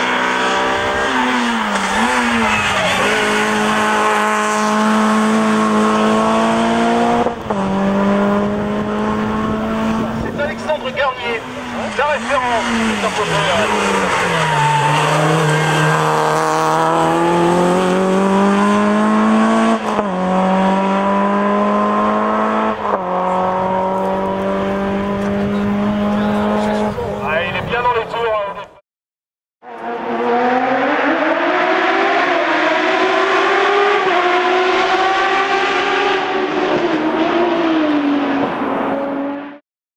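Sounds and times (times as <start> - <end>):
car engine accelerating: 0.0 - 27.4, 29.6 - 39.6.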